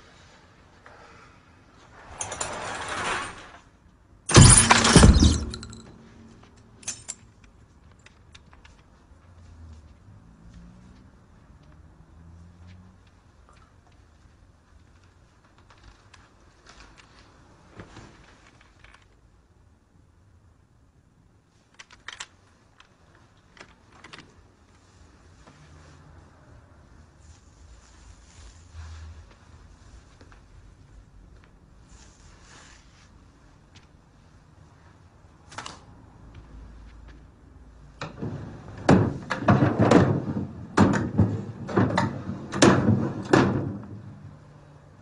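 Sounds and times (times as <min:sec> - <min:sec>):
curtain hooks scraping on metal rod: 0:02.0 - 0:03.7.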